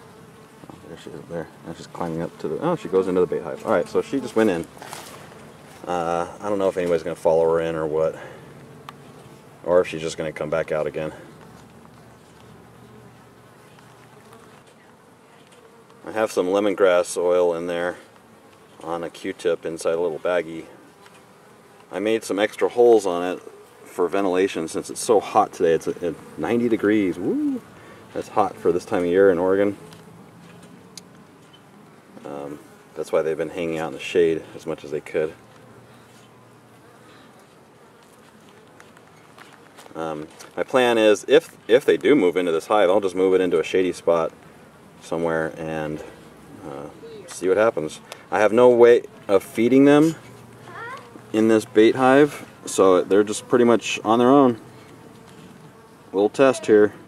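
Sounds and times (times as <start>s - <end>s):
honeybees buzzing: 0.0s - 57.0s.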